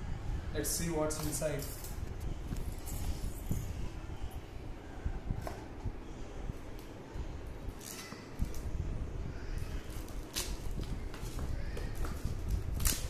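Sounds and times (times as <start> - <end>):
scissors cutting plastic: 7.8 - 8.7, 9.6 - 13.0.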